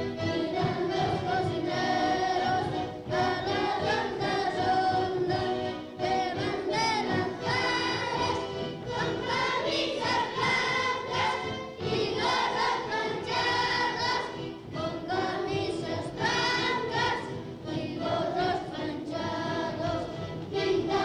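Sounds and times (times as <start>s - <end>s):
children singing in unison: 0.0s - 21.0s.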